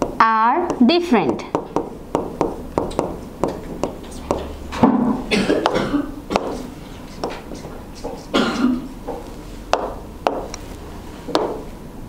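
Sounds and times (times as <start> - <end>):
pen tapping touchscreen: 0.0 - 4.5, 5.6 - 8.4, 9.0 - 10.6, 11.3 - 11.6
woman coughing: 5.3 - 6.6, 8.3 - 8.9.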